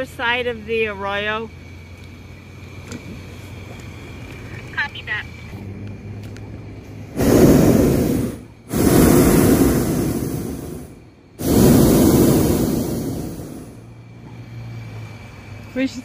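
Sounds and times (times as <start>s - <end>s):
propane burner blasting: 5.6s - 16.0s.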